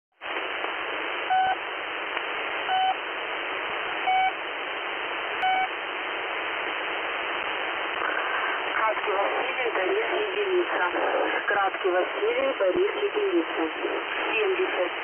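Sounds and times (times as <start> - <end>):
radio static: 0.2 - 15.0
short radio beeps: 1.3 - 1.6, 2.7 - 3.0, 4.0 - 4.4, 5.4 - 5.7.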